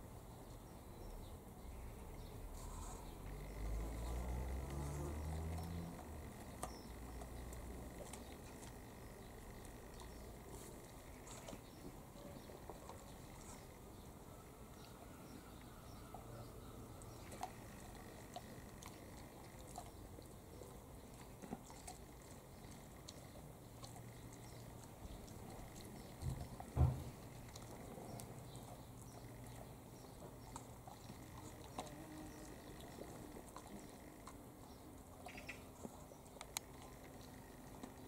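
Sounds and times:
dog chewing a bone: 0:02.6 - 0:14.1, 0:17.0 - 0:38.0
low thump: 0:26.8 - 0:27.1.

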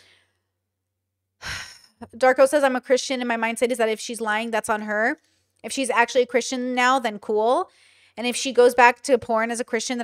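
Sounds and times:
woman breathing into microphone: 0:07.7 - 0:08.2.

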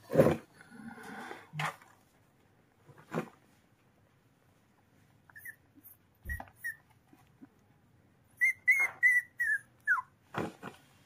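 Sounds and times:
puppy whimpering: 0:05.3 - 0:07.0, 0:08.4 - 0:10.2.

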